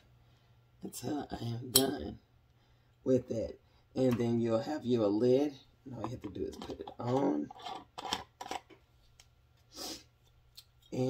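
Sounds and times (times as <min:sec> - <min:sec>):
screw lid twisted onto glass jar: 0:06.0 - 0:08.8.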